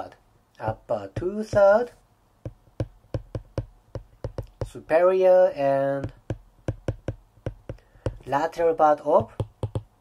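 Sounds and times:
stylus tapping on glass screen: 0.6s - 1.8s, 2.4s - 4.8s, 6.0s - 8.4s, 9.2s - 10.0s.

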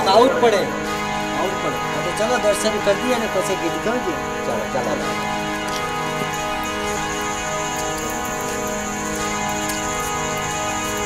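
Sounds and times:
held instrumental chords: 0.0s - 11.0s.

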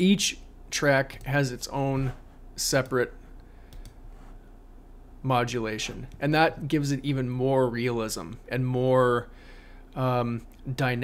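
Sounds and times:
low room hum: 0.0s - 11.0s
computer mouse clicks: 3.7s - 4.0s.

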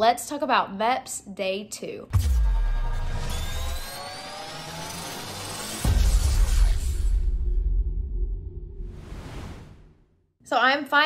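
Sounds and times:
deep bass hit: 2.1s - 3.3s
rising riser tones: 2.2s - 10.0s.

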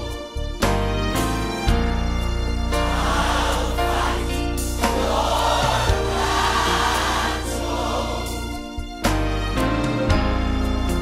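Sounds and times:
musical accompaniment: 0.0s - 11.0s
choir singing held notes: 2.7s - 8.7s.

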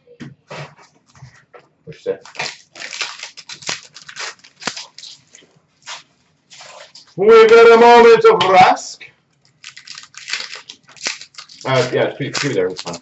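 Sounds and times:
trading cards and wrappers rustling: 2.2s - 7.2s, 9.4s - 13.0s.

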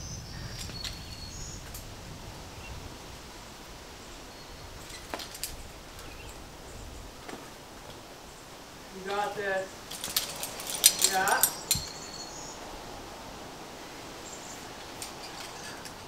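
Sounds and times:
high bird chirps: 11.5s - 12.6s.

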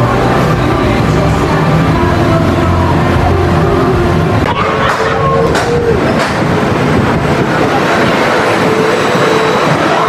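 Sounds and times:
roller coaster wheels rumbling on track: 0.0s - 10.0s.

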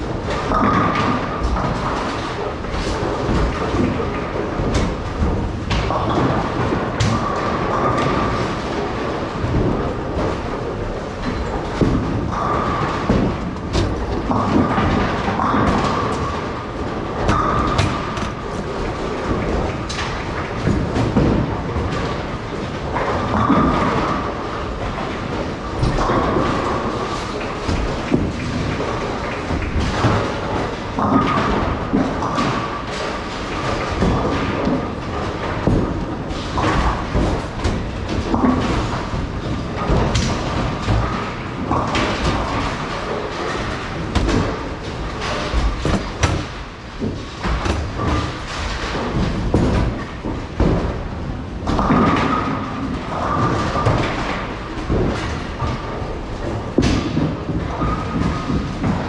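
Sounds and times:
bowling balls rolling: 0.0s - 59.0s
heavy thuds: 34.0s - 55.3s.

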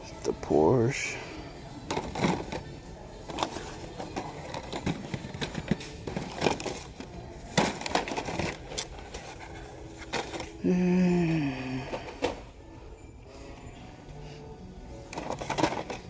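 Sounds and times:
plastic packaging crinkling and clacking: 3.3s - 10.6s, 15.1s - 16.0s.

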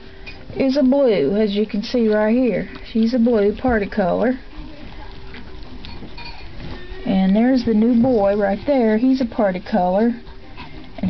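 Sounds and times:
faint rustling: 0.0s - 11.0s.

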